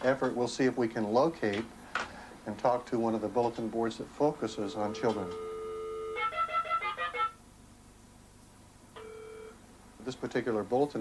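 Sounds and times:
telephone line tone: 0:04.7 - 0:07.4, 0:09.0 - 0:09.6.

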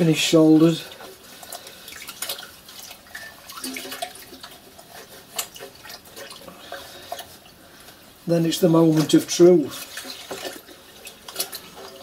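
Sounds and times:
water dripping: 0:00.0 - 0:08.1
water sloshing and splashing in bowl: 0:00.0 - 0:12.0.

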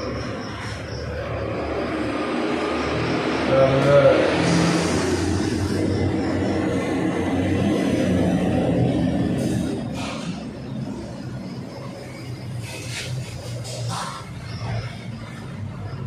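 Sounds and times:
vehicle engine rumble: 0:00.0 - 0:16.0.

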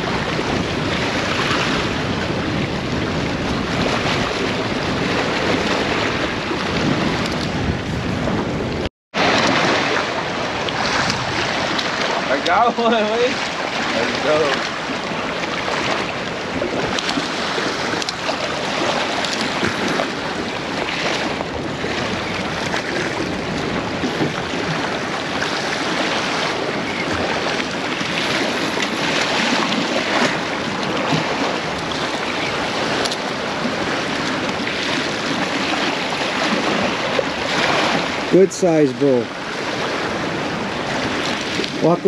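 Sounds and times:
surf breaking on rocks: 0:00.0 - 0:42.0
wind on microphone: 0:00.0 - 0:42.0.

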